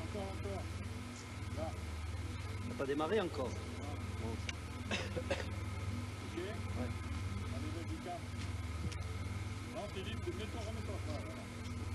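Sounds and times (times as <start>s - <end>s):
steady low hum: 0.0s - 11.9s
man laughing: 4.8s - 5.6s
man speaking: 9.7s - 11.6s.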